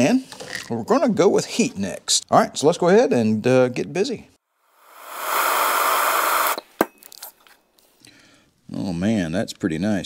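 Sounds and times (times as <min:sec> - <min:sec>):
gas torch flame hissing: 0:04.8 - 0:06.6.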